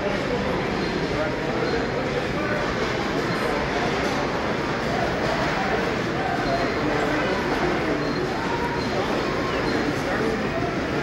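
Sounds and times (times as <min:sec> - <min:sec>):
hubbub of crowd voices: 0:00.0 - 0:11.0.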